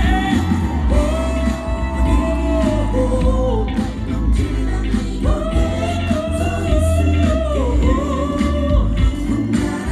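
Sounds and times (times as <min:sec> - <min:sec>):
pop band with heavy bass: 0:00.0 - 0:09.9.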